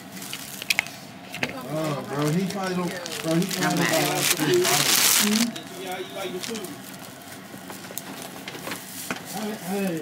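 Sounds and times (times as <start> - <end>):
plastic bag rustling: 1.6 - 5.6, 6.2 - 10.0.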